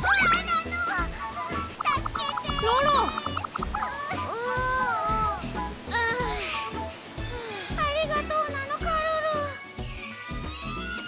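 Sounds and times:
high-pitched cartoon voice crying: 0:00.0 - 0:06.5
light background music: 0:00.0 - 0:11.0.

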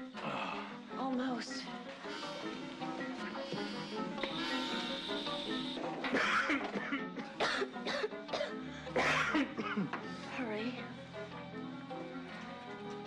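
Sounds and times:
dramatic background music: 0:00.0 - 0:13.0
person coughing: 0:06.1 - 0:10.0.

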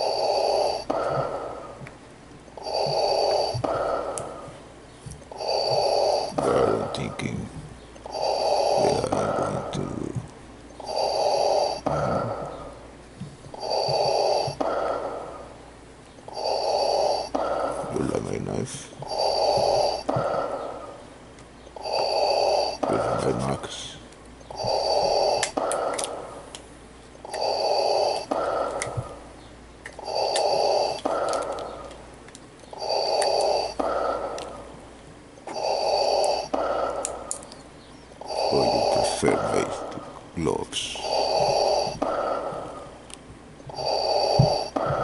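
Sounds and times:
slow heavy breathing: 0:00.0 - 0:02.0, 0:02.6 - 0:26.6, 0:27.2 - 0:45.0
man groaning: 0:11.8 - 0:12.4.

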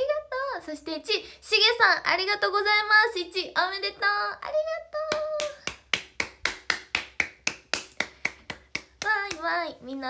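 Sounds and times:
person clapping hands: 0:05.1 - 0:09.5.

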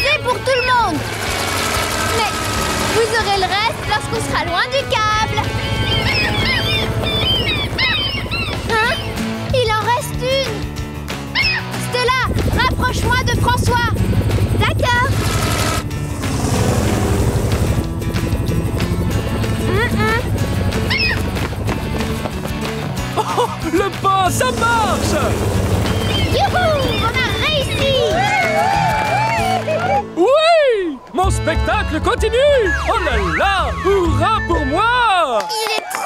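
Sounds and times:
helicopter hum: 0:00.0 - 0:29.8
cartoon background music: 0:00.0 - 0:35.4
seagull calls squawking: 0:05.4 - 0:09.3, 0:11.4 - 0:11.8, 0:20.8 - 0:21.3, 0:25.8 - 0:28.0.

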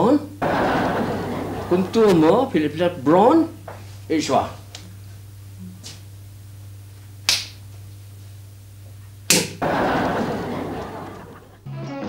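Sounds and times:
low electrical hum: 0:00.0 - 0:11.7
sharp snap: 0:07.2 - 0:07.6, 0:09.3 - 0:09.6.

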